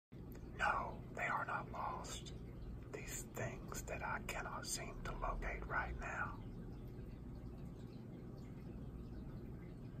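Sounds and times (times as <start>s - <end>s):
person whispering: 0.6s - 6.4s.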